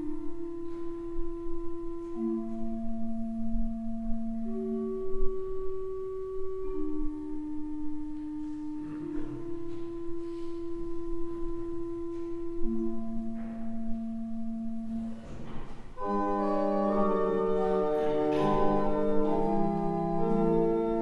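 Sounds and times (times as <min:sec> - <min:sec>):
pipe organ sustained chords: 0:00.0 - 0:21.0.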